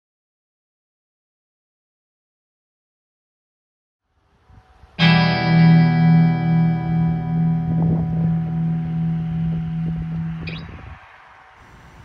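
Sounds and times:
guitar chord ringing: 5.0s - 11.0s.

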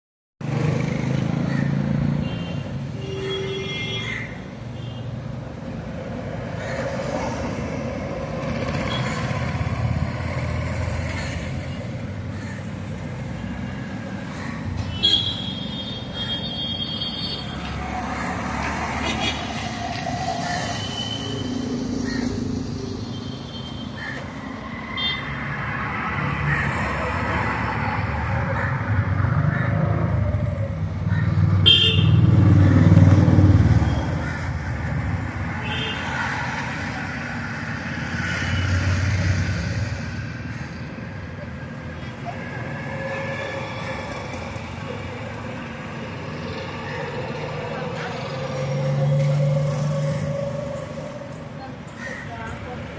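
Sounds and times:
road traffic: 0.4s - 52.9s
vehicle passing loudly: 24.5s - 40.4s.

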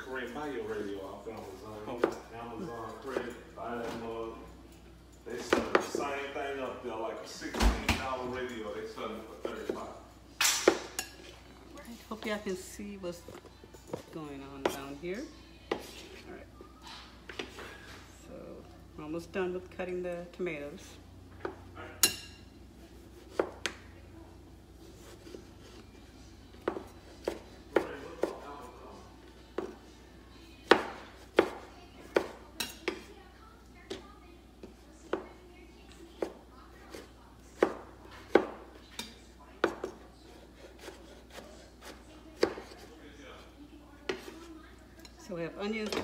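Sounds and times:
knife chopping on wooden board: 23.2s - 23.8s, 26.6s - 28.4s, 30.6s - 33.1s, 37.6s - 38.6s, 40.6s - 42.8s.

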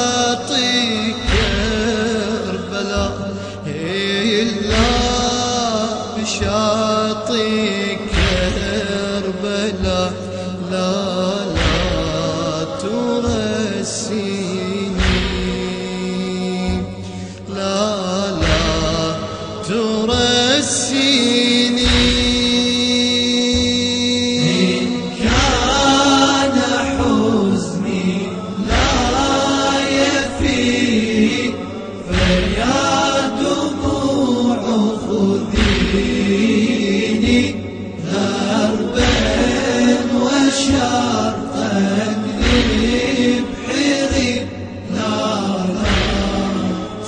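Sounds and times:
man chanting: 0.0s - 47.0s
slow low beat: 0.0s - 47.0s
deep thump: 8.0s - 10.1s, 11.5s - 12.5s, 14.9s - 15.9s, 18.3s - 19.4s, 21.8s - 22.8s, 32.1s - 34.0s, 35.5s - 37.8s, 42.4s - 44.5s, 45.6s - 47.0s
voices chanting: 24.4s - 47.0s.

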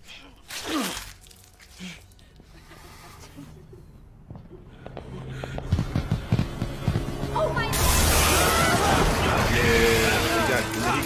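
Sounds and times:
film music: 0.0s - 11.0s.

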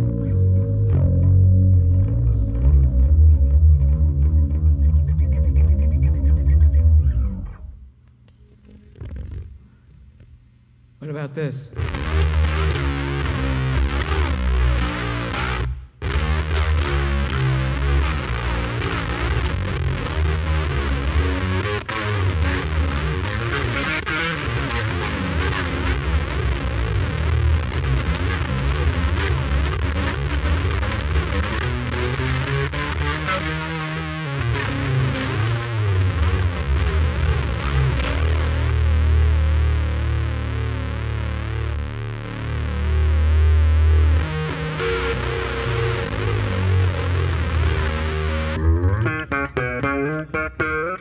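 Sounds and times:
electric bass guitar: 0.0s - 8.0s, 11.8s - 51.0s.

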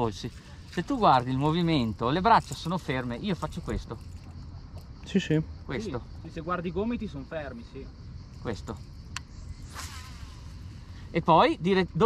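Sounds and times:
fishing line hissing off spool: 9.1s - 11.3s.

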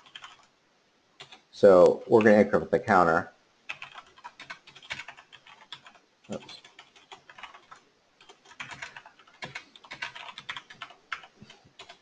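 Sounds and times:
typing on computer keyboard: 0.0s - 0.5s, 1.2s - 1.4s, 3.7s - 12.0s.

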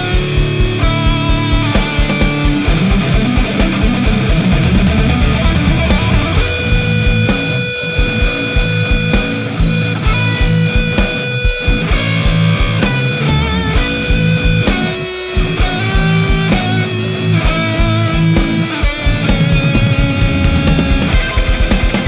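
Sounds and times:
distorted electric guitar riffs: 0.0s - 22.0s
drums with fast kick drum: 0.0s - 22.0s.

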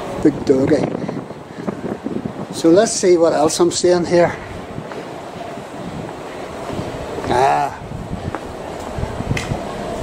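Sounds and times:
city background noise: 0.0s - 10.0s
wind rumble on microphone: 0.0s - 10.0s.

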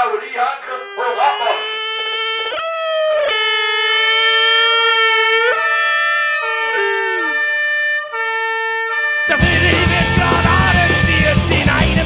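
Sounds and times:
wind instrument long notes: 0.7s - 11.5s
music track: 9.3s - 12.0s.

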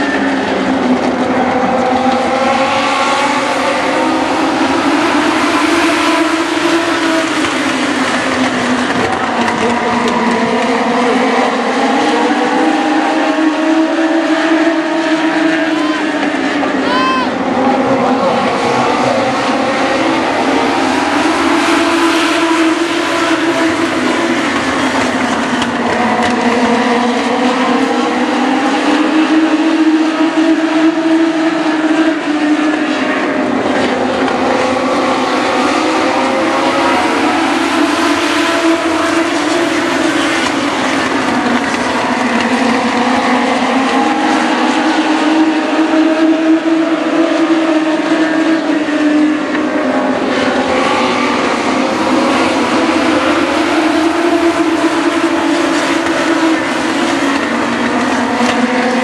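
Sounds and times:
race car engines racing: 0.0s - 59.0s.

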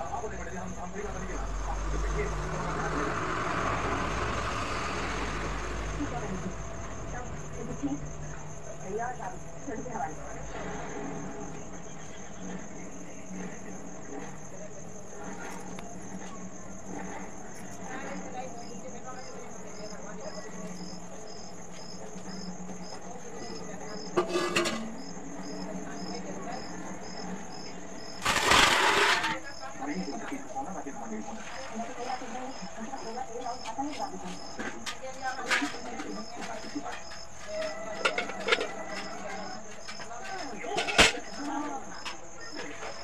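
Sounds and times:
crickets chirping: 0.0s - 43.0s.

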